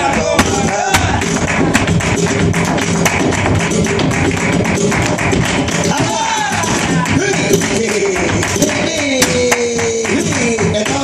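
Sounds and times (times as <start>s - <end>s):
flamenco footwork taps: 0.0s - 11.0s
flamenco guitar: 0.0s - 11.0s
hand clapping: 0.0s - 11.0s.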